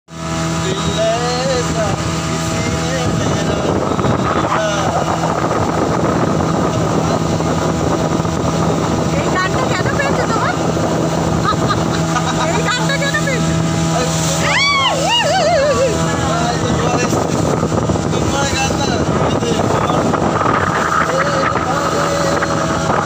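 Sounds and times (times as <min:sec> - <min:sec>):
motorboat engine humming: 0:00.1 - 0:23.0
water rushing past boat: 0:00.1 - 0:23.0.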